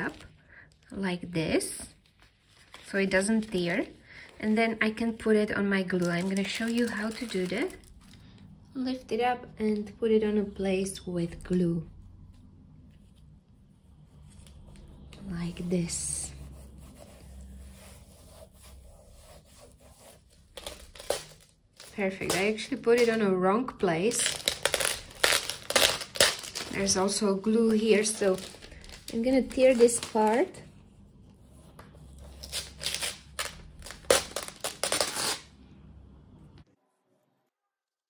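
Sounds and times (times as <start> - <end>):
plastic crinkling: 5.8 - 8.3, 20.3 - 23.2, 24.0 - 30.7, 32.4 - 35.5
hands rubbing plastic sheet: 14.3 - 23.3, 24.0 - 30.6.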